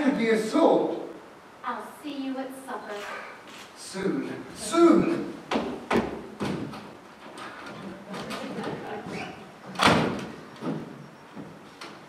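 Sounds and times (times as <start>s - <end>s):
door shutting with a bang: 9.1s - 11.5s.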